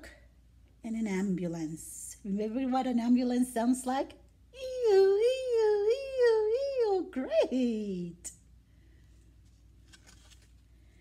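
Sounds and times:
cardboard page turning: 9.4s - 10.8s.

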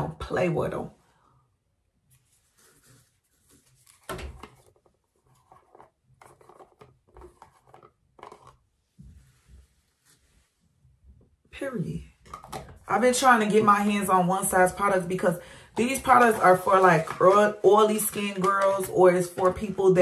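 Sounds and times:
plastic jar rubbing and scraping: 2.4s - 8.6s, 15.8s - 20.0s.

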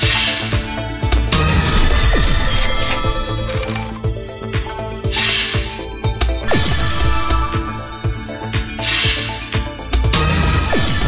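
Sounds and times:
electronic game music: 0.0s - 11.0s.

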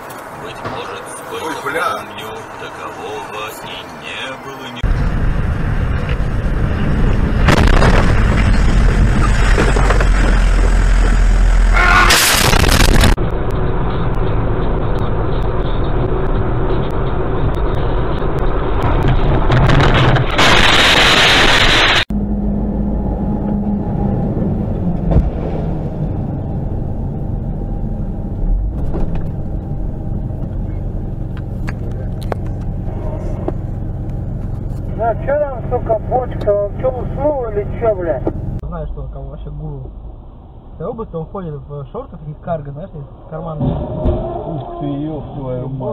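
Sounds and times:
vehicle engine and road noise: 0.0s - 45.9s
loud rushing noise: 4.8s - 23.0s.

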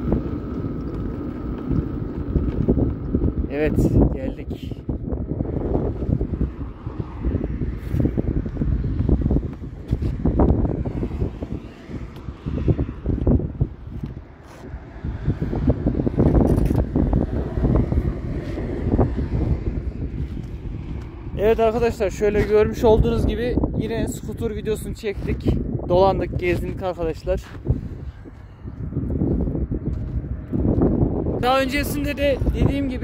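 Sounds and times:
wind buffeting microphone: 0.0s - 33.0s.

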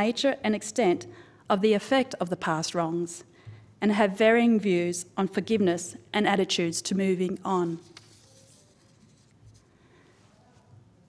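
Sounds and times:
paper notes rustling: 7.6s - 9.7s.

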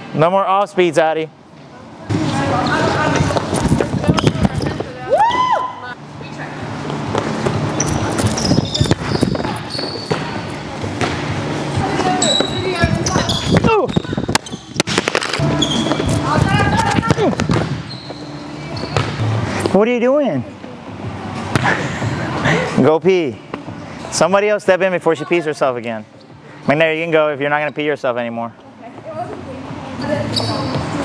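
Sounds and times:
sneakers squeaking on floor: 2.2s - 5.0s, 6.8s - 19.7s, 26.1s - 26.4s, 28.9s - 31.0s
volleyballs smacking: 12.4s - 16.1s, 16.8s - 17.8s.

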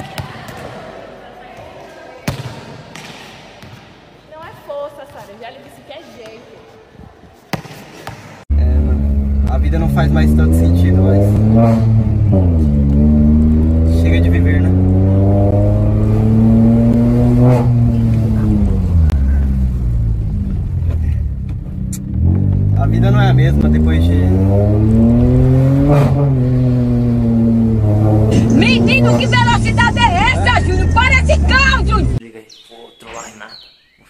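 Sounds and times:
car engine accelerating hard: 8.5s - 32.2s.

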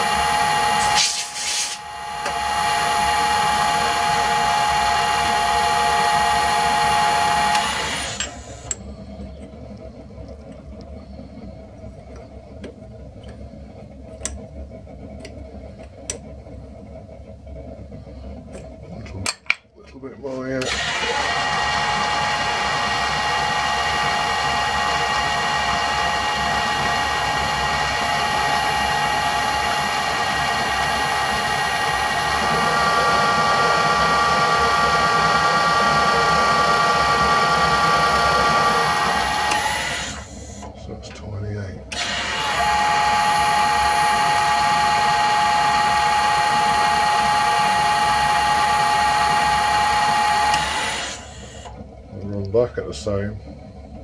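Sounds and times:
metal lathe gear whine: 0.0s - 54.0s.

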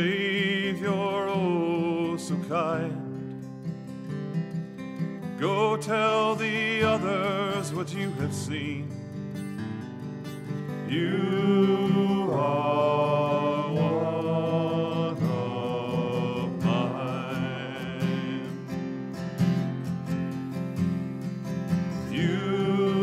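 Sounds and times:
person singing with vibrato: 0.0s - 3.0s, 5.4s - 8.8s, 10.9s - 18.8s, 22.1s - 23.0s
acoustic guitar playing: 0.0s - 23.0s.

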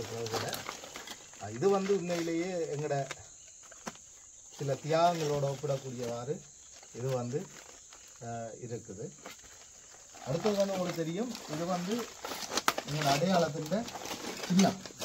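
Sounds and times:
man talking: 0.0s - 0.7s, 1.4s - 3.2s, 4.6s - 6.4s, 8.2s - 9.2s, 10.2s - 12.2s, 12.8s - 14.9s.

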